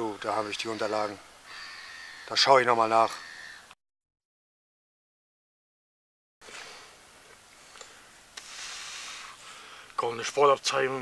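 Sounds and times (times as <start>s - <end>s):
soft high rushing hiss: 0.0s - 3.7s, 6.4s - 11.0s.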